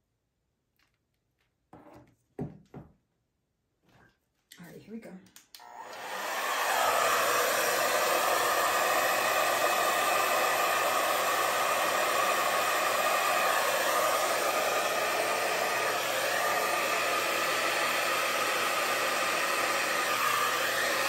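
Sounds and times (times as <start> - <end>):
hair dryer blowing: 5.5 - 21.0.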